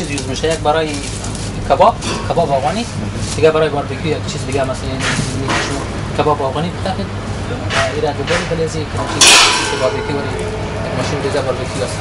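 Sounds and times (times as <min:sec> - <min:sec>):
steady low hum: 0:08.6 - 0:12.0.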